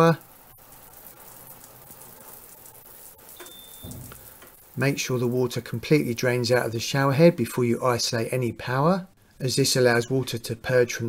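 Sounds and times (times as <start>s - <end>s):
shower water spattering: 0.0s - 5.4s
high beep: 3.4s - 4.0s.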